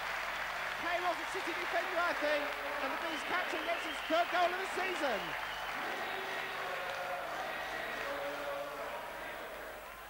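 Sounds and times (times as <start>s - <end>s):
stadium crowd cheering: 0.0s - 10.0s.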